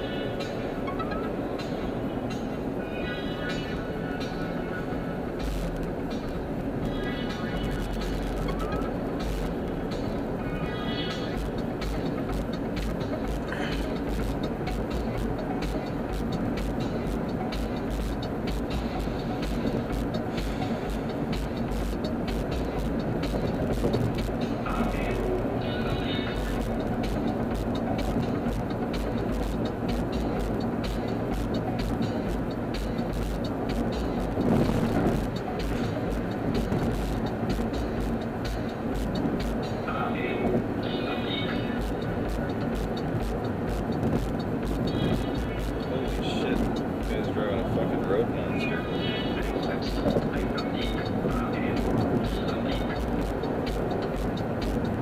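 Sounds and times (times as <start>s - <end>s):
car road and engine noise: 0.0s - 55.0s
music playing: 0.0s - 55.0s.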